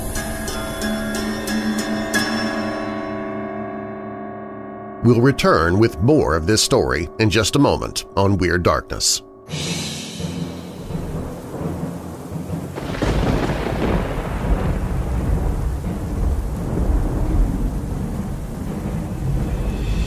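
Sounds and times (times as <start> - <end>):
steady rain: 10.2 - 20.0
thunder rumbling: 10.2 - 20.0.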